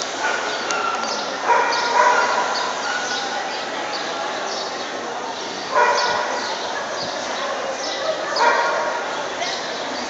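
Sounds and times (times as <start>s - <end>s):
crowd chatter: 0.0s - 10.0s
dogs barking: 0.1s - 3.5s, 5.7s - 9.2s.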